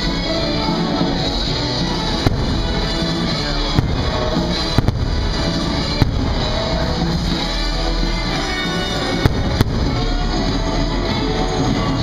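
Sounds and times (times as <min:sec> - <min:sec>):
loud show music: 0:00.0 - 0:12.0
fireworks bangs: 0:00.5 - 0:11.2.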